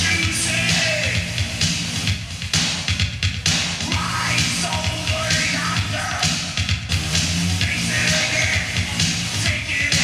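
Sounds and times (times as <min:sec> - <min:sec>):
loud live band music: 0:00.0 - 0:10.0.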